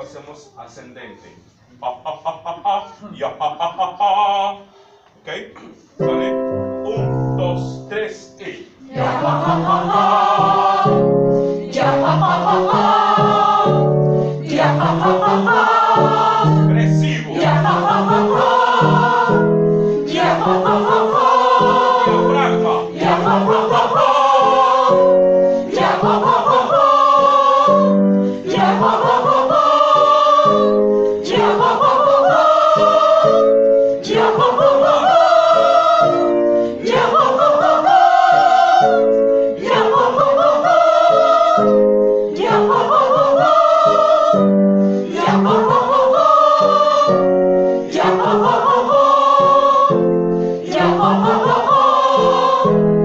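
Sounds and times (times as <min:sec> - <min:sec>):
group of singers vocalizing: 0:01.7 - 0:05.2, 0:06.0 - 0:53.0.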